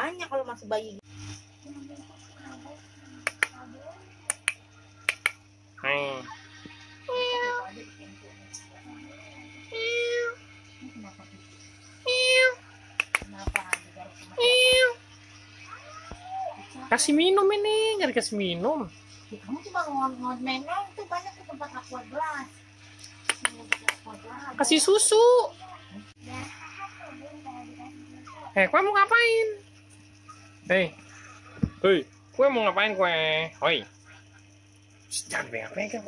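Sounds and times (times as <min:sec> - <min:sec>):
short sharp clicks: 0:04.3 - 0:05.4.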